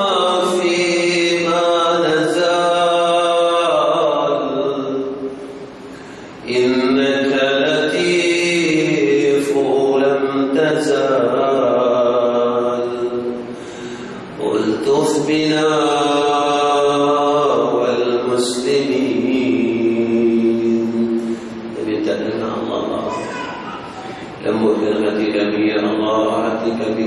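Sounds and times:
man chanting a prayer: 0.0s - 5.3s, 6.4s - 13.5s, 14.4s - 23.6s, 24.4s - 27.0s.

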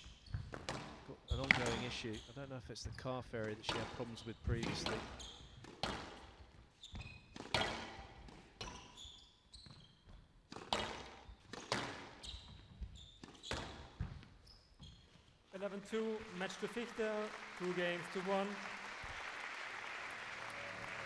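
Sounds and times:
shoes squeaking on wooden floor: 0.0s - 3.1s, 4.8s - 15.5s
squash ball hits: 4.6s - 6.3s, 7.0s - 8.8s, 10.5s - 14.3s
applause: 15.6s - 21.0s.

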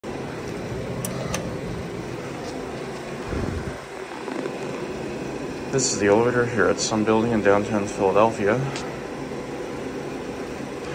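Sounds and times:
steady background hum: 0.0s - 10.9s
low rumble: 0.6s - 5.6s.

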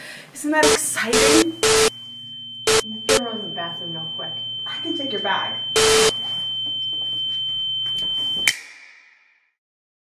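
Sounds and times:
high-pitched electronic tone: 0.6s - 2.0s, 2.6s - 3.3s, 5.8s - 6.2s
low ringing tone: 0.7s - 8.6s.

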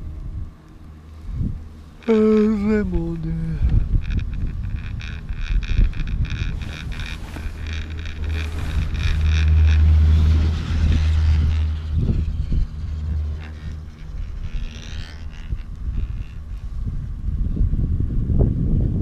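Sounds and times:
deep chairlift rumble: 0.0s - 19.0s
wind buffeting microphone: 0.0s - 19.0s
chairlift grip clicking over wheels: 3.6s - 16.7s.

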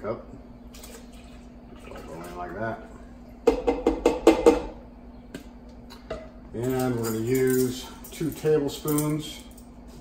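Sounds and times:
plastic cup knocking on saucepan: 3.4s - 4.7s.

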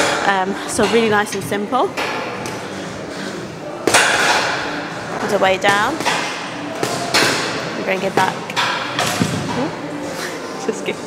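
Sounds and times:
gym room noise: 0.0s - 11.0s.

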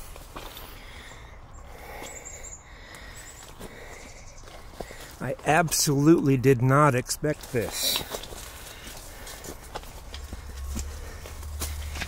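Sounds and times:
footsteps on dry leaves: 7.4s - 12.0s
branches brushing past: 7.5s - 12.0s.

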